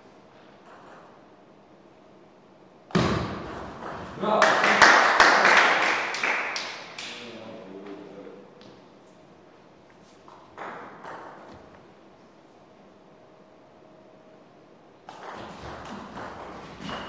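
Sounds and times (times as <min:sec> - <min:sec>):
table tennis ball bouncing: 0:02.9 - 0:04.2, 0:10.2 - 0:11.8, 0:15.0 - 0:17.0.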